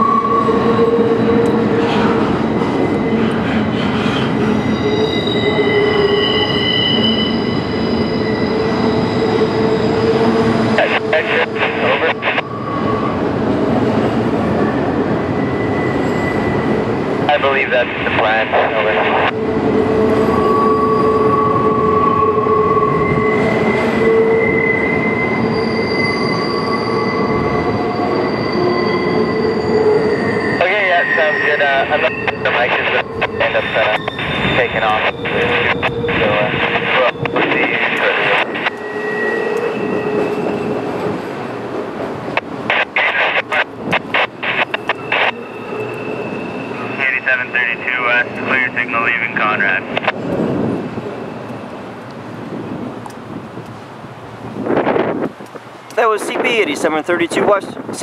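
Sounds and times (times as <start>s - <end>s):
train wheel squeal: 0.0s - 13.2s, 14.6s - 17.0s, 19.4s - 41.2s, 44.6s - 48.6s.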